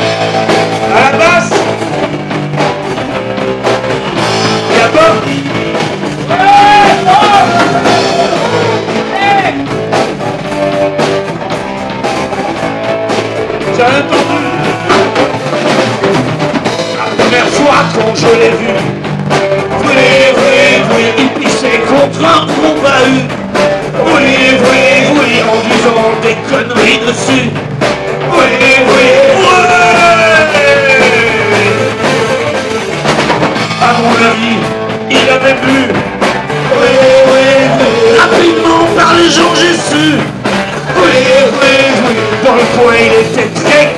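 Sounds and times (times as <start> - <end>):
bass guitar: 0.0 - 43.9
drum kit: 0.0 - 43.9
electric guitar: 0.0 - 43.9
person singing: 4.3 - 9.7, 13.6 - 15.4, 16.9 - 19.0, 19.6 - 27.6, 28.2 - 32.8, 33.6 - 43.9.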